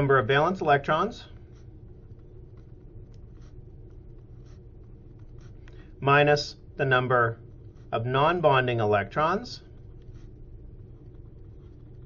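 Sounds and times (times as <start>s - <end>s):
low steady hum: 0.0s - 12.0s
stylus scratching on tablet: 0.0s - 12.0s.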